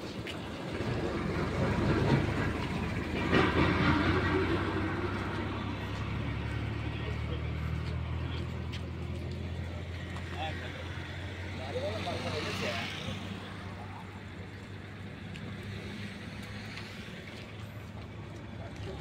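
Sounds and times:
engine running: 0.0 - 19.0
people's voices: 0.0 - 19.0.

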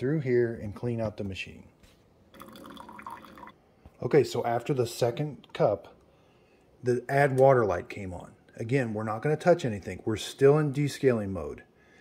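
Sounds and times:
liquid trickling and dripping: 2.3 - 3.6.

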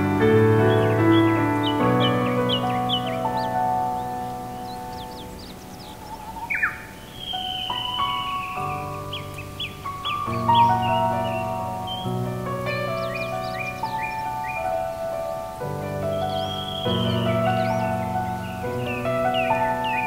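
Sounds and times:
forest birdsong: 0.0 - 20.0
harsh falling bird call: 0.0 - 20.0
slow gentle piano piece: 0.0 - 20.0.

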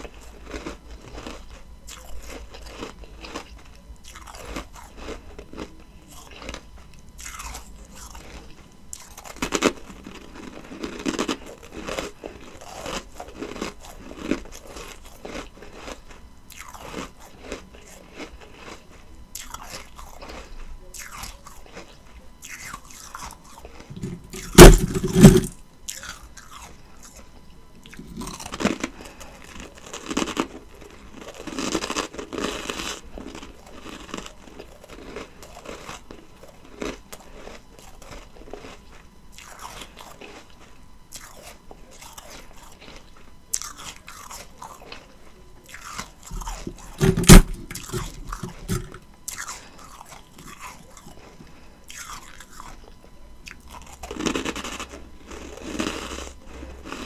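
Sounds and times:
loud bite into ice: 23.9 - 25.6, 46.3 - 49.0
crisp ice crunching: 23.9 - 26.1, 29.6 - 30.4, 45.8 - 51.0.

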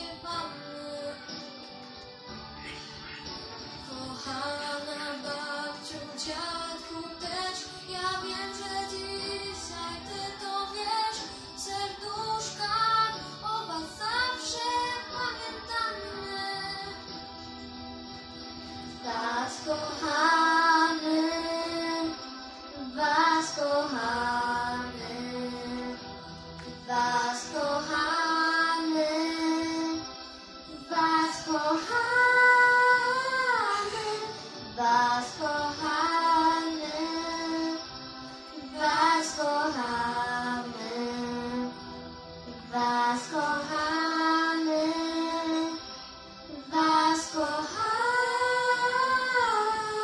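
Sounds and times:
girls singing: 0.0 - 1.5, 2.3 - 17.4, 18.8 - 50.0
musical accompaniment: 0.0 - 50.0.

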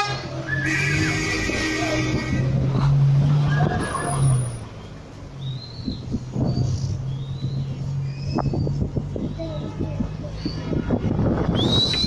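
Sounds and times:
road engine hum: 0.0 - 12.0.

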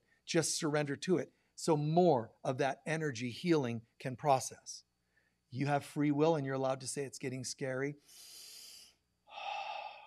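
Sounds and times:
man breathing into microphone: 8.1 - 10.0.

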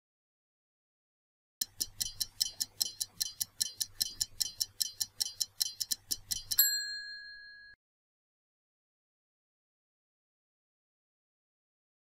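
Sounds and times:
stopwatch ticking: 1.6 - 7.2
bell ding: 6.6 - 7.8.

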